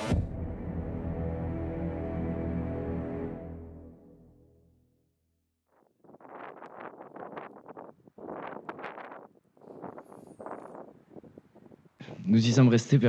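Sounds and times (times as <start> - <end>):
wind blowing in gusts: 6.0 - 12.4.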